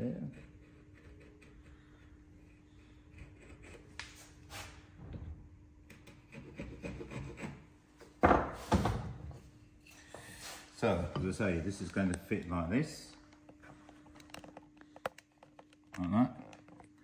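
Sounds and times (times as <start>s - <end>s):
chisel paring wood: 5.8s - 7.6s
loud wooden knocks: 8.2s - 9.2s.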